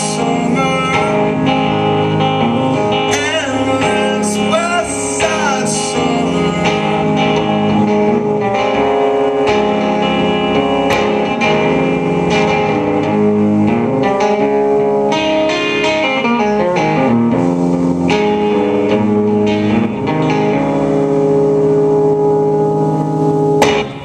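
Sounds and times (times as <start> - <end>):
electric guitar chords and notes: 0.0 - 24.0.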